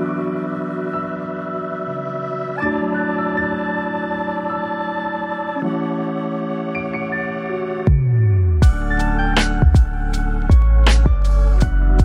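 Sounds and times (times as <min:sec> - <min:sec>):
organ-like keyboard chords: 0:00.0 - 0:12.0.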